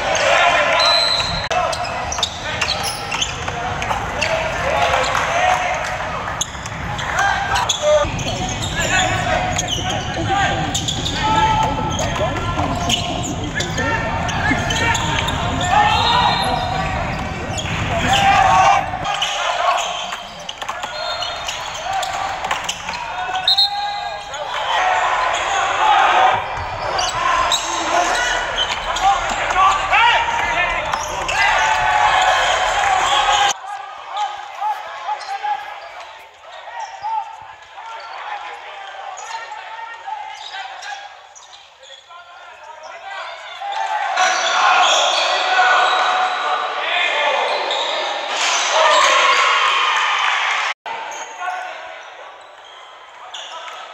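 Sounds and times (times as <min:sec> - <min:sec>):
voices of players and spectators: 0:00.0 - 0:53.9
basketball bouncing on court: 0:05.8 - 0:19.2.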